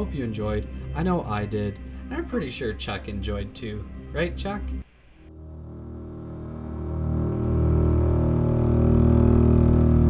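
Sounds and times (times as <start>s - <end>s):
low synthesized drone: 5.3s - 10.0s.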